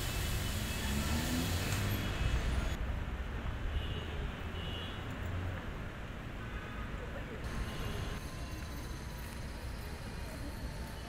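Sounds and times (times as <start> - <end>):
traffic rumble of passing cars: 0.0 - 11.0.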